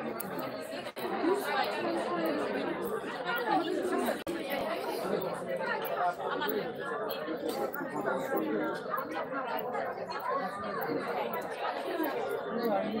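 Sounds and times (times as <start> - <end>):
chatter of many people: 0.0 - 13.0.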